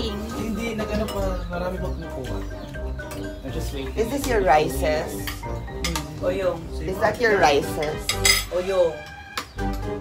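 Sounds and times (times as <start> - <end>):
metal utensils clinking on plates: 0.7 - 1.6, 5.1 - 6.3, 7.4 - 8.9.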